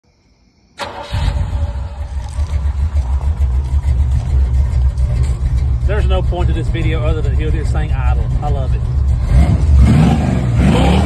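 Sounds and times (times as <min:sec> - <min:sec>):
pickup truck engine idling: 0:00.8 - 0:11.0.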